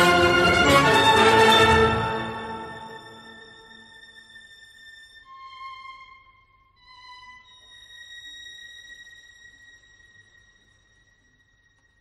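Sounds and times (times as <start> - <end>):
high held orchestral note: 0.0 - 3.9.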